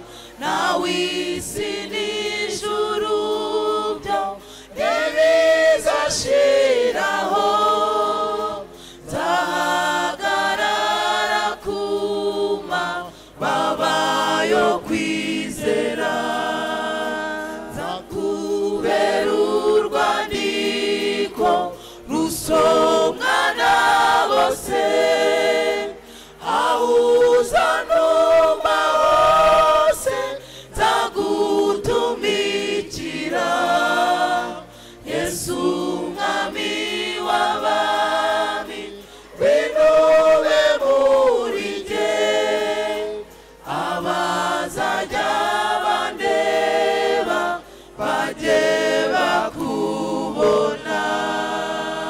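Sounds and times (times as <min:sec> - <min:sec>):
choir singing a hymn: 0:00.0 - 0:52.0.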